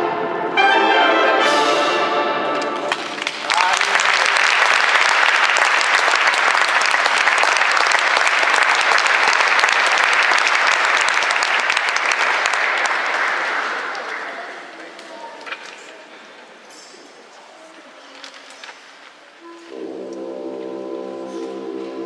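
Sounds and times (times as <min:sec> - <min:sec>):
orchestra final chord: 0:00.0 - 0:02.8, 0:19.7 - 0:22.0
audience applauding: 0:02.8 - 0:14.9.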